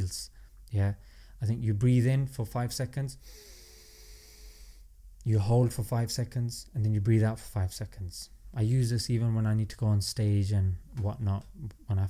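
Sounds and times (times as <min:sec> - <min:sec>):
man inhaling close to microphone: 0:00.4 - 0:01.4, 0:03.2 - 0:04.9.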